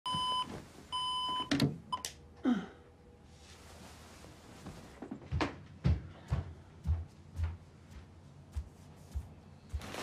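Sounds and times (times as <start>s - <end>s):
bedding rustling: 0.1s - 1.4s, 3.3s - 5.4s, 8.7s - 10.0s.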